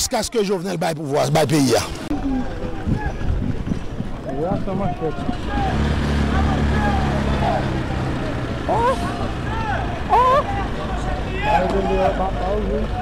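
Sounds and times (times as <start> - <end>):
people shouting: 5.4 - 7.7, 8.7 - 12.0.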